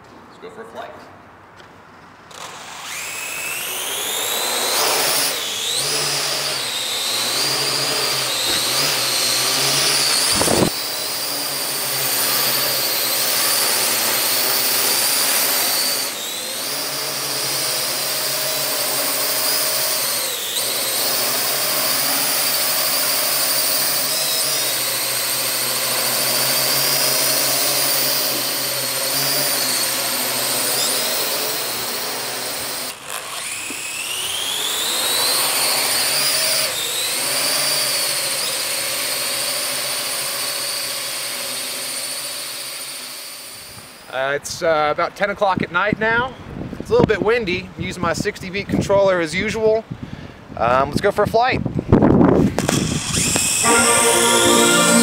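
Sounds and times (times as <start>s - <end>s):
drone propellers whining: 2.4s - 28.0s, 52.5s - 55.0s.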